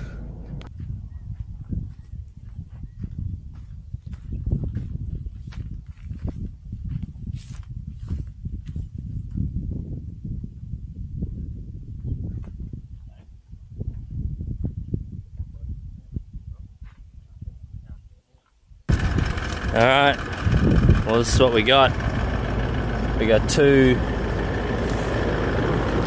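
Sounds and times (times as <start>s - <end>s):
wind rumble on microphone: 0.0s - 22.8s
footsteps through dry grass: 0.8s - 9.4s.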